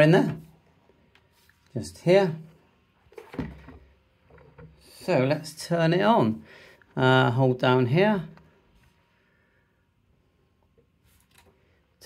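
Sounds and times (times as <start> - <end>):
dull thump: 3.2 - 3.9.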